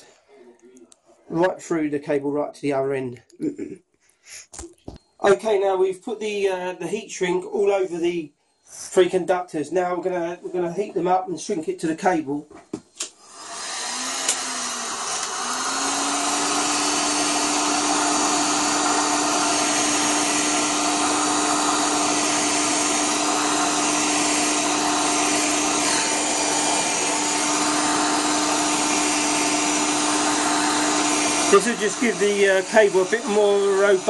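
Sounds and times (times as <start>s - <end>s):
heat gun fan blowing: 13.1s - 34.0s.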